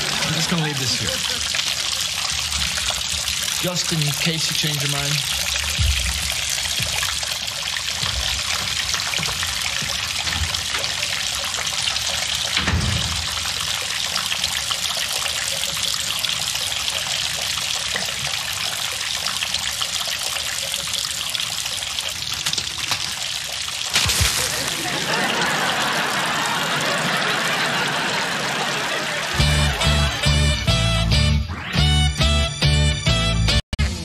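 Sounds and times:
water trickling and dripping: 0.0 - 28.0
low thud: 12.6 - 13.5.

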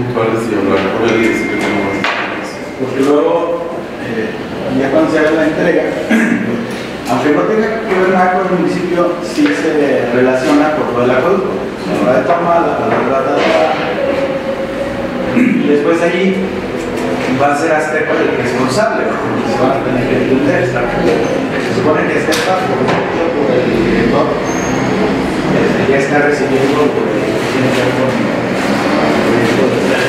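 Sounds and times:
men talking: 0.0 - 30.0
person speaking: 0.0 - 30.0
thin steady high tone: 0.8 - 5.8.

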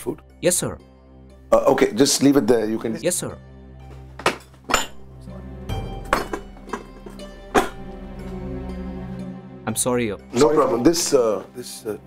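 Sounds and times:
soft background music: 0.0 - 12.0
dishes and glasses clinking: 4.2 - 5.1, 6.0 - 7.8.

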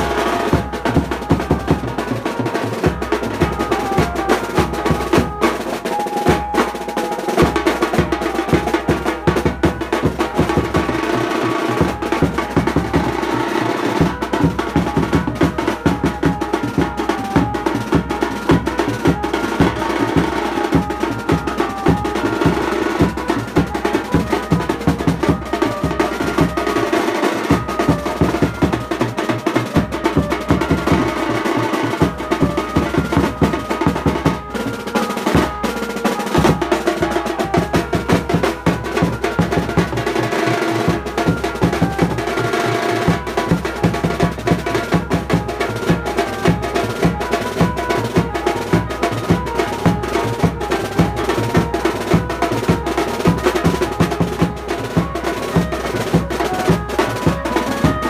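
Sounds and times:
live band playing: 0.0 - 58.0
snare drum rolls: 0.0 - 58.0
bass drum beats: 7.4 - 13.3.

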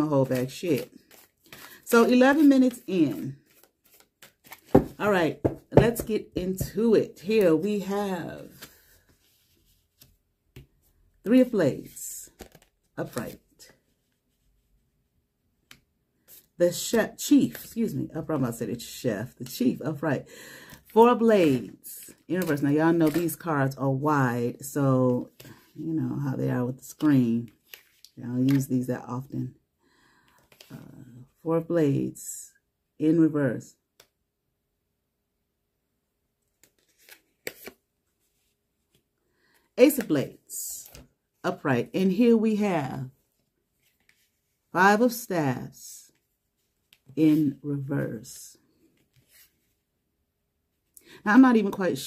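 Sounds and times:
cards rustling and slapping: 0.2 - 7.6, 8.4 - 10.8, 12.3 - 13.9, 22.1 - 23.5, 26.8 - 28.7, 36.5 - 39.0.

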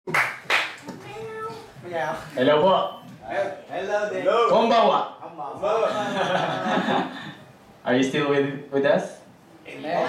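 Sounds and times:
sharp hand claps: 0.1 - 1.0.

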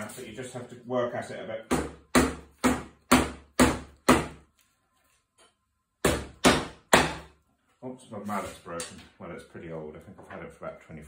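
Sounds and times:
rubber mallet striking wood: 1.7 - 4.5, 6.0 - 7.3.

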